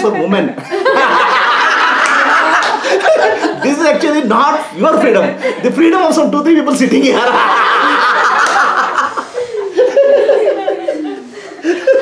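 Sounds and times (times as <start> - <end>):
man laughing heartily: 7.0 - 12.0.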